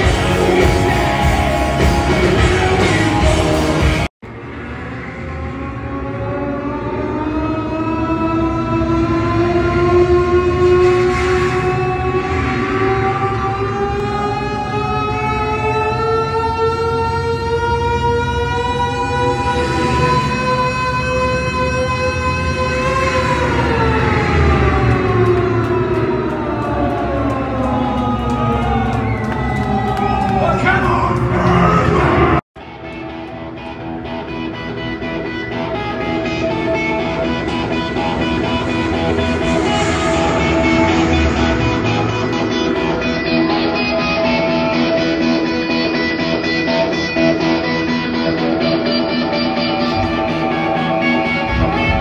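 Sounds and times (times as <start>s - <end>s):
wailing guitar tone: 5.0s - 52.0s
distorted electric guitar sliding note: 33.5s - 52.0s
drum rumble: 37.1s - 43.6s, 49.9s - 52.0s.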